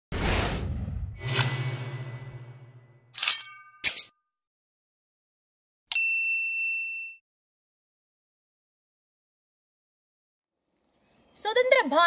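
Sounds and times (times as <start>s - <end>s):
bright bell ding: 5.9s - 7.2s.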